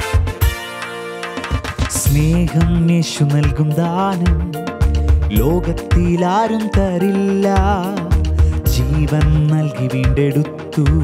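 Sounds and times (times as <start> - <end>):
drum beat: 0.0 - 11.0
electronic keyboard playing: 0.0 - 11.0.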